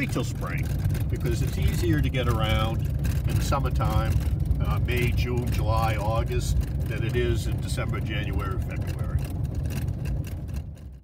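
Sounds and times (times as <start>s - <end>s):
truck rumble from inside cab: 0.0s - 11.0s.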